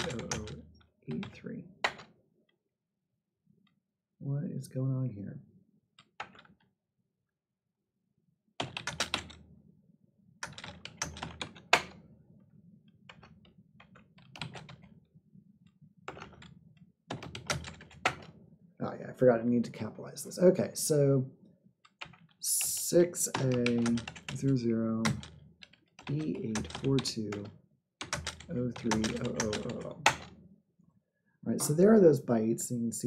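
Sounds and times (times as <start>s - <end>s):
computer keyboard typing: 0.0s - 2.1s, 8.6s - 9.4s, 10.4s - 12.0s, 13.9s - 14.9s, 16.1s - 16.5s, 17.1s - 18.3s, 21.9s - 30.3s.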